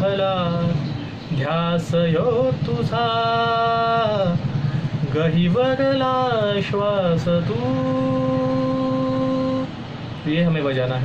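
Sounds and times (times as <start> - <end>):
man singing a long held note: 5.2 - 9.8.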